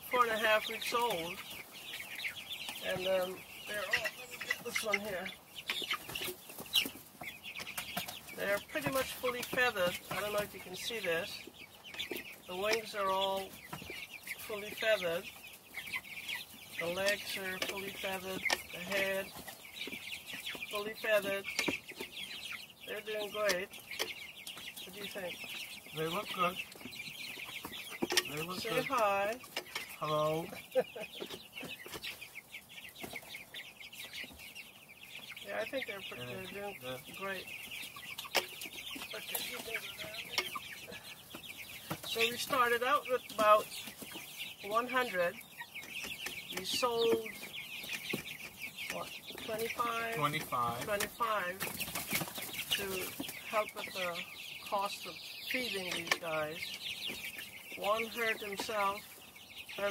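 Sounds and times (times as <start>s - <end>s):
young chickens calling: 0.0s - 59.9s.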